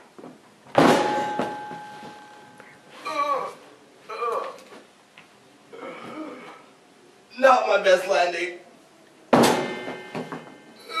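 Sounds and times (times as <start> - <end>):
person landing on floor thud: 0.7 - 2.2, 9.4 - 10.6.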